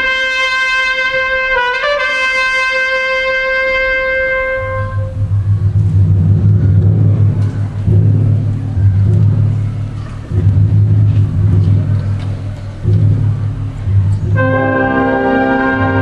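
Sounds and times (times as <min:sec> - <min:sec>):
orchestra playing low sustained notes: 0:00.0 - 0:16.0.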